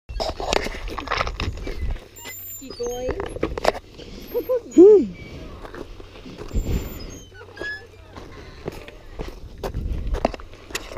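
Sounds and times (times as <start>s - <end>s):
dog whimpering: 4.3s - 5.5s.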